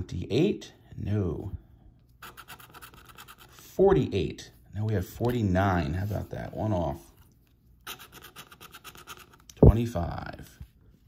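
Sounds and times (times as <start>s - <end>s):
plastic tool scratching ticket: 2.2s - 3.6s, 7.8s - 9.6s.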